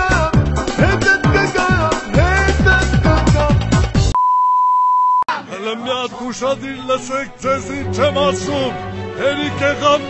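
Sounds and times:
high test-tone beep: 4.2 - 5.3.

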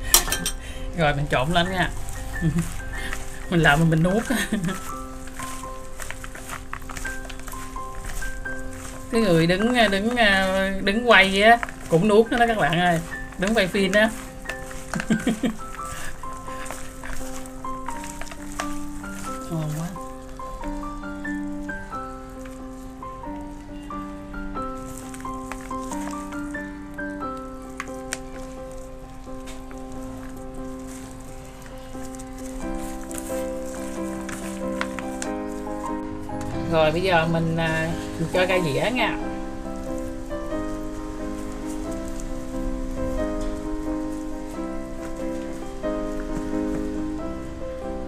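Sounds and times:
slow instrumental music: 0.0 - 48.0
salad tossed in plastic bowl: 1.4 - 23.5, 24.6 - 36.6.

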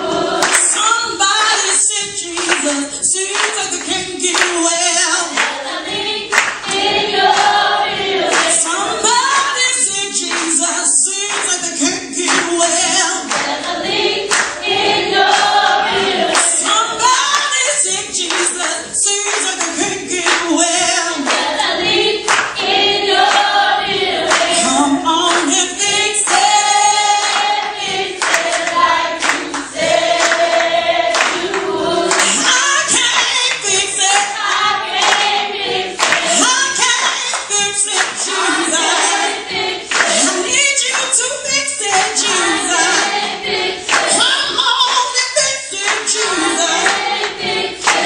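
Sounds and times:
congregation and choir singing: 0.0 - 48.0
hand-clapping: 0.4 - 23.6, 24.2 - 48.0
man singing into microphone: 0.8 - 5.4, 8.7 - 13.3, 16.6 - 21.3, 24.5 - 26.2, 44.1 - 46.8.

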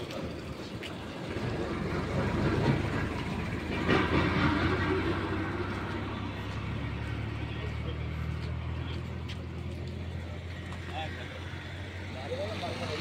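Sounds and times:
road noise: 0.0 - 13.0
vehicle engine humming: 0.0 - 13.0.

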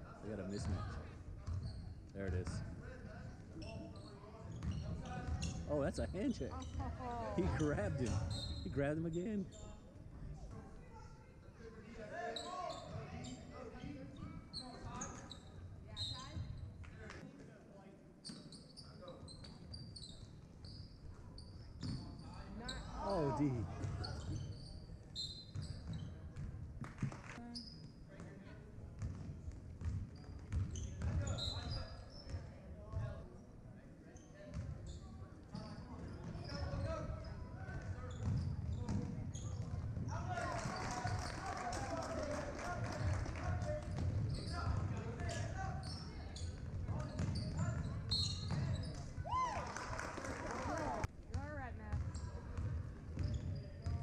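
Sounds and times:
sneaker squeaks: 0.5 - 10.7, 12.2 - 17.2, 18.2 - 26.5, 27.4 - 28.2, 29.8 - 33.2, 34.1 - 41.4, 43.9 - 49.4, 51.9 - 54.0
spectators' voices: 22.9 - 24.0.

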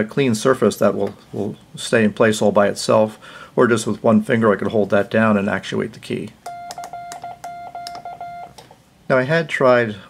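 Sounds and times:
morse code sidetone beeping: 6.5 - 8.6.

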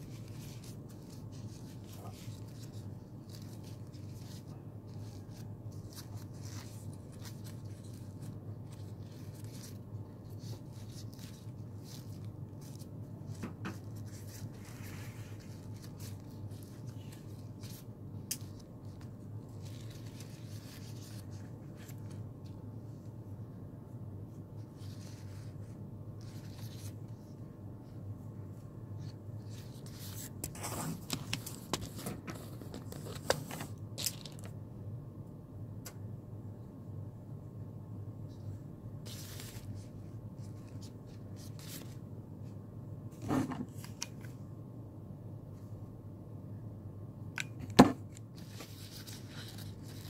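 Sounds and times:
ribbon rustling between fingers: 0.0 - 23.2, 39.0 - 42.0
steady low hum: 0.0 - 50.0.

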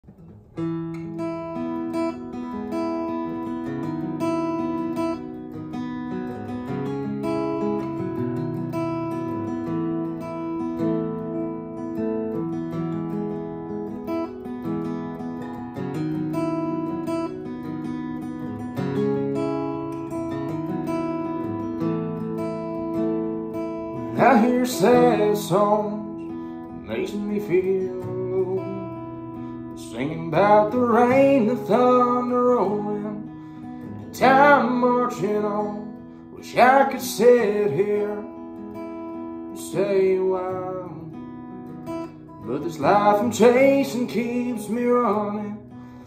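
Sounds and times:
acoustic guitar strumming: 0.0 - 46.0.

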